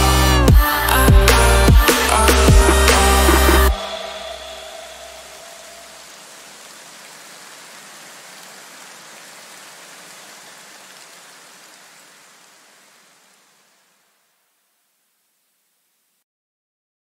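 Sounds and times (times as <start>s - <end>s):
background music: 0.0s - 6.0s
steady hiss: 0.7s - 16.2s.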